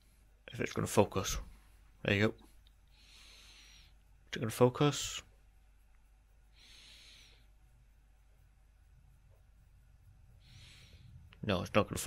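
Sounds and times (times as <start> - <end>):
faint soft hiss: 0.0 - 12.0.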